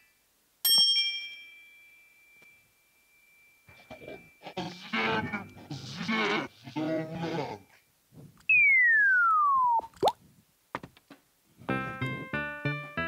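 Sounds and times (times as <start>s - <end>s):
wordless vocal sounds: 3.7s - 7.8s
whistle sliding down in pitch: 8.5s - 10.0s
rising whistle blip with click: 8.5s - 10.2s.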